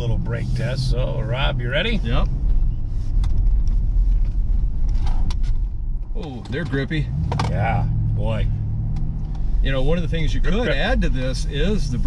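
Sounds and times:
low rumble of road noise: 0.0 - 12.0.

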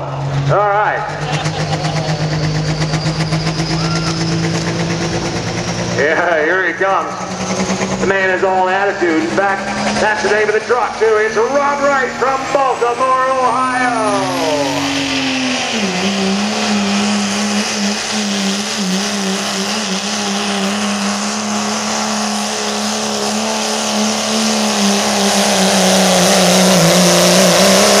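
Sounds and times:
truck engine at high revs: 0.0 - 28.0.

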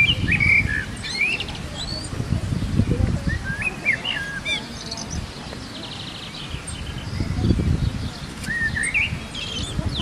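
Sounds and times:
soft low wind rumble: 0.0 - 10.0
songbirds chirping: 0.0 - 10.0.

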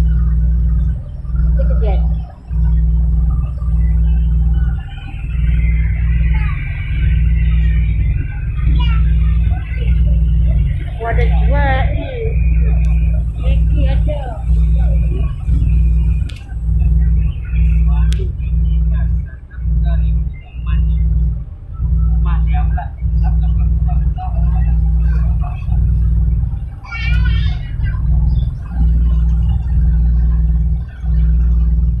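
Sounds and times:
faint passenger voices: 0.0 - 32.0
low rumble of ferry: 0.0 - 32.0.

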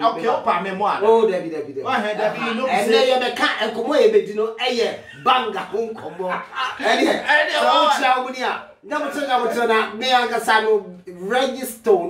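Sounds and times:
person talking: 0.0 - 12.0
person chuckling: 5.1 - 7.2.

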